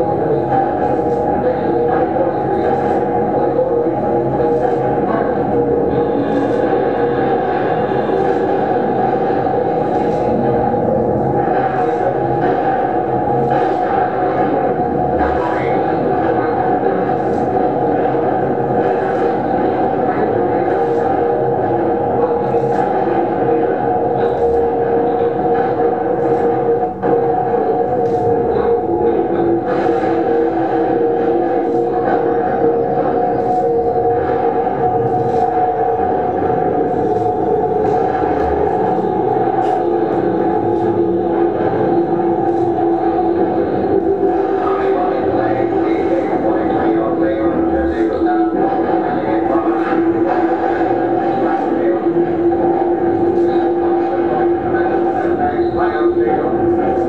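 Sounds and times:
drone music: 0:00.0 - 0:57.0.

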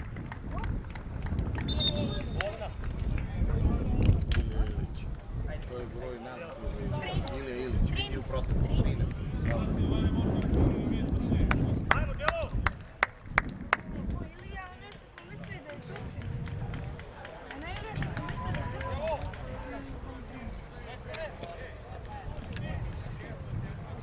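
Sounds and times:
wind rumbling on microphone: 0:00.0 - 0:24.0
sharp hand claps: 0:11.4 - 0:13.9, 0:14.8 - 0:19.5.

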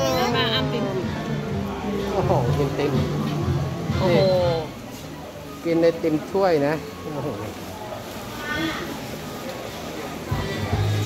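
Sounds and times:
market crowd chatter: 0:00.0 - 0:11.0.

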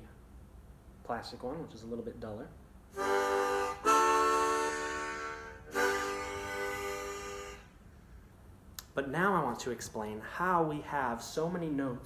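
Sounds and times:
harmonica chords: 0:02.9 - 0:07.8.

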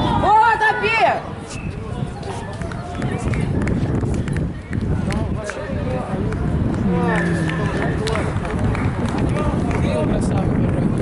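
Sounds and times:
people talking indistinctly: 0:05.0 - 0:10.5
low rumble: 0:06.5 - 0:09.4.

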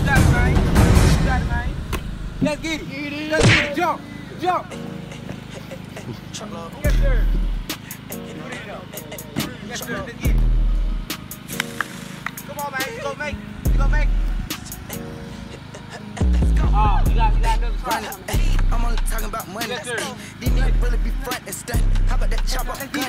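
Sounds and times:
deep bass notes: 0:00.0 - 0:03.9, 0:06.8 - 0:07.7, 0:10.2 - 0:11.2, 0:13.3 - 0:14.9, 0:16.2 - 0:19.4, 0:20.5 - 0:22.8.

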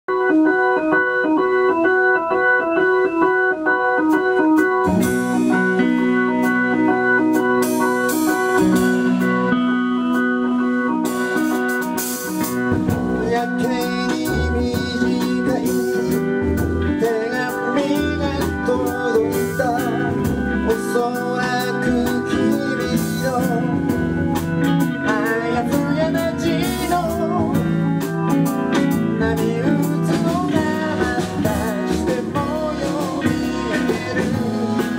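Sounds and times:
electric guitar: 0:00.1 - 0:34.9
electric organ: 0:00.1 - 0:34.9
live blues-rock band: 0:00.1 - 0:34.9
steady drum beat: 0:04.8 - 0:09.6, 0:11.0 - 0:34.9.

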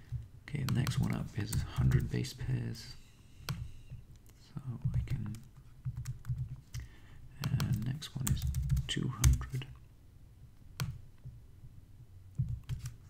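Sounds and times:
computer keyboard typing: 0:04.9 - 0:06.8, 0:07.4 - 0:09.6, 0:12.4 - 0:13.0.

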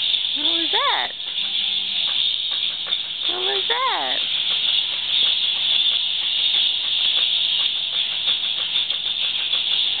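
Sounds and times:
high-pitched background hiss: 0:00.0 - 0:10.0.

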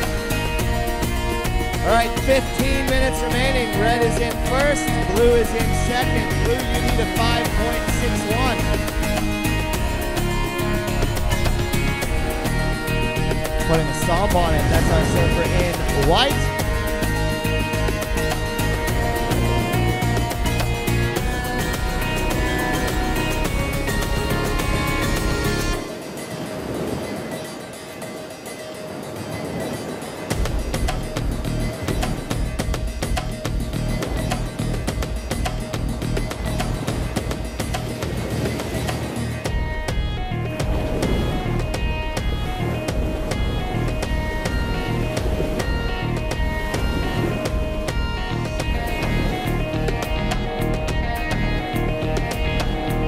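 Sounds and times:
background music with steady beat: 0:00.0 - 0:53.0.

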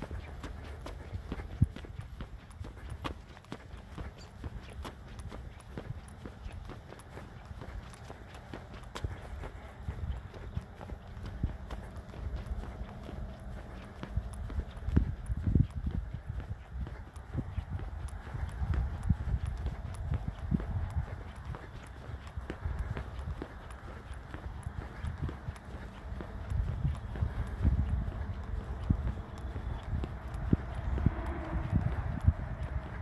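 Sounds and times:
footsteps on asphalt: 0:00.0 - 0:33.0.

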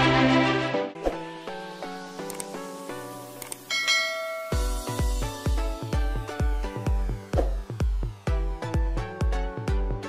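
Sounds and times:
quick clicks: 0:02.2 - 0:02.6, 0:03.4 - 0:03.7
bright bell chime: 0:03.7 - 0:05.2
electronic dance beat: 0:04.5 - 0:10.0.

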